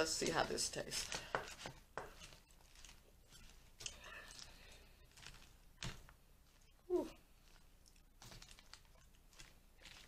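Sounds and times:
leafy rustling: 0:00.0 - 0:10.0
plastic fork tossing salad: 0:00.0 - 0:10.0.

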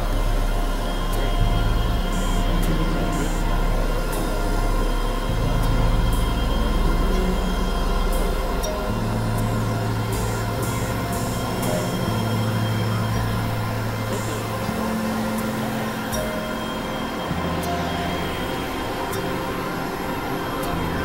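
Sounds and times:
dense noise hiss: 0:00.0 - 0:21.0
synthesizer bass drone: 0:00.0 - 0:21.0.

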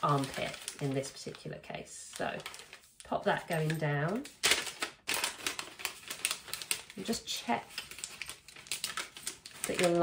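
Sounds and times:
paper rustling: 0:00.0 - 0:01.4, 0:02.1 - 0:10.0.

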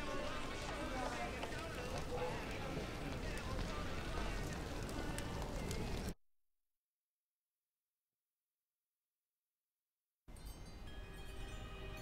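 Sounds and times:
chimes ringing: 0:10.3 - 0:12.0.

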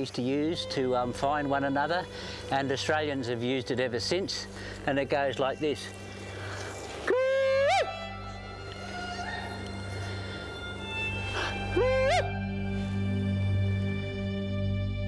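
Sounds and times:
soft background music: 0:00.0 - 0:15.0
man's cooee call: 0:07.1 - 0:09.9, 0:11.2 - 0:12.6.

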